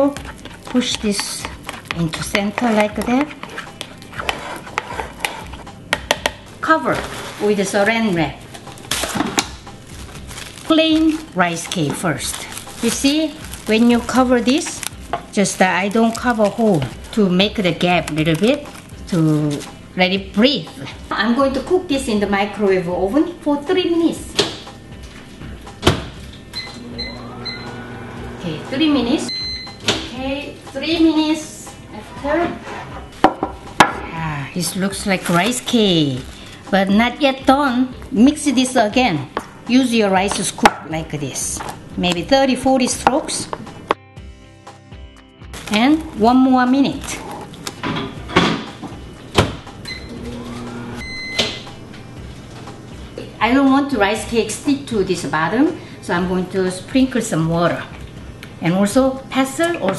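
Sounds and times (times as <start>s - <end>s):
microwave keypad beeps: 26.6s - 27.7s, 29.3s - 29.8s, 49.9s - 50.2s, 51.0s - 51.7s
high keypad beep: 29.3s - 29.8s.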